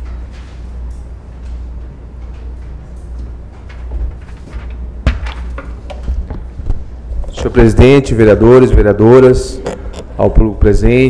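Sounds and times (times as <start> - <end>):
low sound system hum: 0.0 - 11.0.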